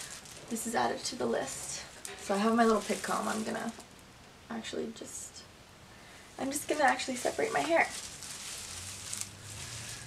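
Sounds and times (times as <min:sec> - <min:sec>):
plastic gloves rustling in hair: 0:00.0 - 0:04.1, 0:06.4 - 0:10.0
low steady hum: 0:00.0 - 0:10.0.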